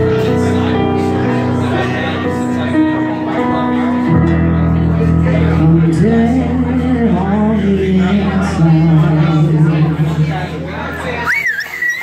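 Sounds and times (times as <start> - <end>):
murmured voices: 0.0 - 12.0
music: 0.0 - 12.0
person whistling shrilly: 11.2 - 12.0.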